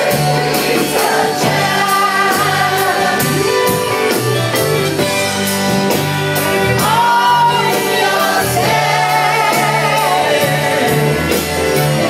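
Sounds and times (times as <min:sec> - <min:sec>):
crowd singing together: 0:00.0 - 0:04.6, 0:06.8 - 0:12.0
live band playing: 0:00.0 - 0:12.0.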